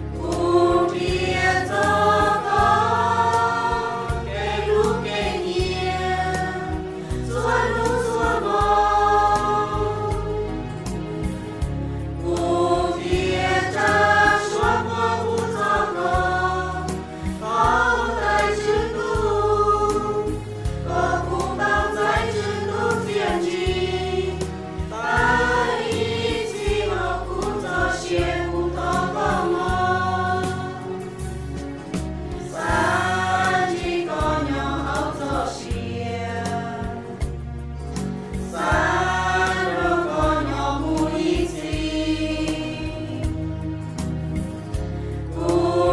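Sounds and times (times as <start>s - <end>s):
choir singing a hymn: 0.0s - 45.9s
instrumental accompaniment with bass: 0.0s - 45.9s.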